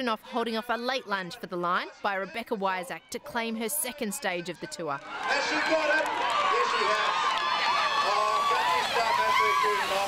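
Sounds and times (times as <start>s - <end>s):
race commentator talking: 0.0s - 7.2s, 8.0s - 10.0s.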